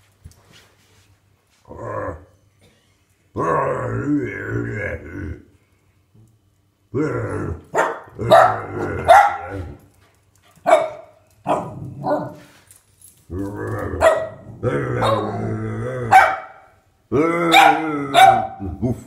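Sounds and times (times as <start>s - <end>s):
dog growling: 6.9s - 9.9s, 13.3s - 16.3s
small dog barking: 7.7s - 9.7s, 10.6s - 12.4s, 14.0s - 14.4s, 16.1s - 16.6s, 17.5s - 18.6s.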